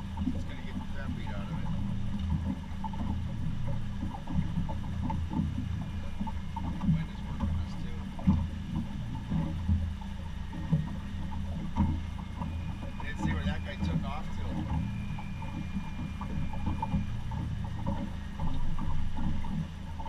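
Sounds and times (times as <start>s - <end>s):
boat motor running: 0.0s - 20.0s
water slapping against hull: 0.0s - 20.0s.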